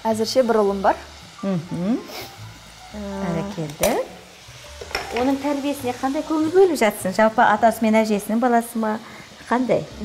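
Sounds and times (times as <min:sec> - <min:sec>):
onions sizzling in a pan: 0:00.0 - 0:10.0
woman's voice: 0:03.0 - 0:04.2
spoon stirring and tapping: 0:04.8 - 0:05.3.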